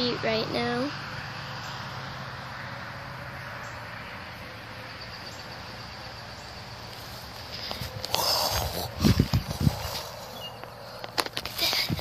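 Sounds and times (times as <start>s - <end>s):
even outdoor hiss: 0.0s - 12.0s.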